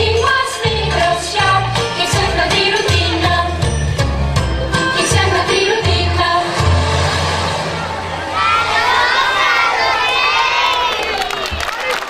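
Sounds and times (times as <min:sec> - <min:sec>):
children cheering and shouting: 0:07.7 - 0:12.0.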